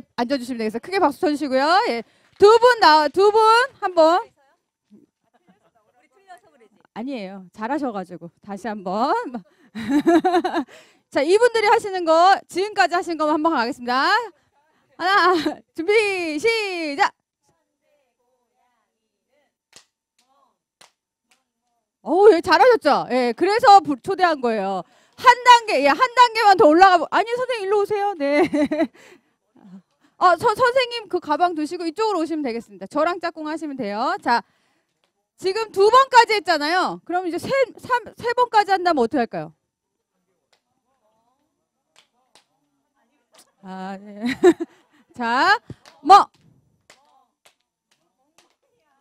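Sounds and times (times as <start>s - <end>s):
faint hand claps: 19.7s - 21.8s, 41.9s - 42.5s, 45.6s - 48.8s.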